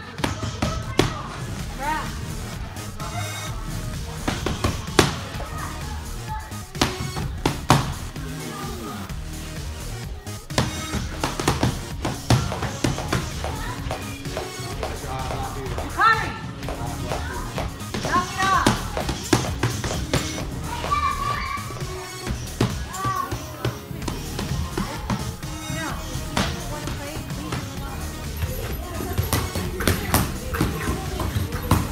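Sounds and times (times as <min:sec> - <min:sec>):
background music: 0:00.0 - 0:31.9
boxing gloves hitting focus mitts: 0:04.3 - 0:05.3, 0:10.5 - 0:15.8
children calling out: 0:20.4 - 0:23.8.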